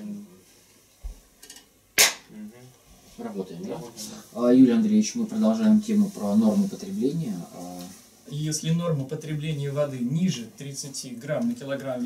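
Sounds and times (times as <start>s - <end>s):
sharp hand clap: 2.0s - 2.3s.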